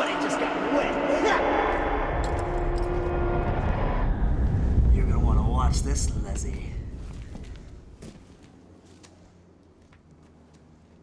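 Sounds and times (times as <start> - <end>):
vehicle engine rumble: 1.9 - 11.0.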